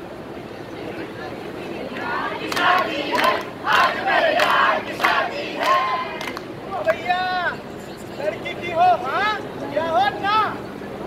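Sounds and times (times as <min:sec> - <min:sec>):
voices chanting loudly: 0:01.9 - 0:07.0.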